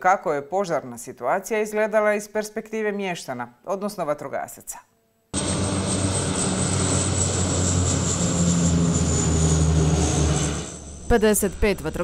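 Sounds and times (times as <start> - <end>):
high turbine whine: 5.4 - 12.0
propeller engines droning: 5.4 - 12.0.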